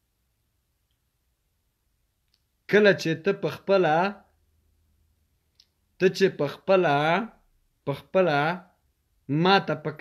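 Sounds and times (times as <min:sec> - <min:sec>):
man speaking: 0:02.7 - 0:04.4, 0:06.0 - 0:10.0.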